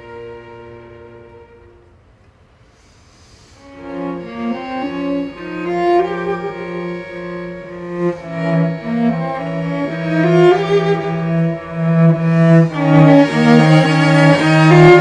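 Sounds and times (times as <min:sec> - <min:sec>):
string quartet playing: 0:00.0 - 0:02.2, 0:03.5 - 0:15.0.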